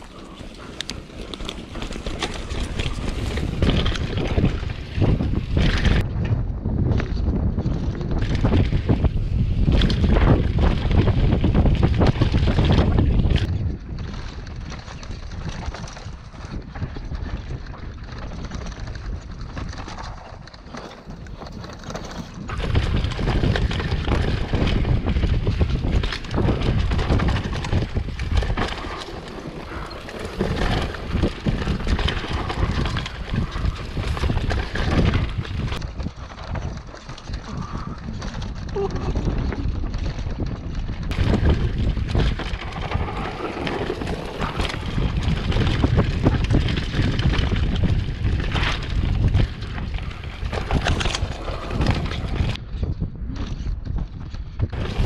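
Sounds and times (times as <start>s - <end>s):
bike rattling over dirt trail: 0.0s - 55.0s
wind buffeting microphone: 0.0s - 55.0s.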